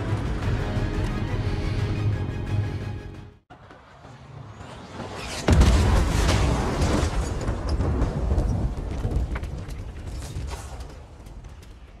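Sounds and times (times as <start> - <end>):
debris crackles: 5.0 - 12.0.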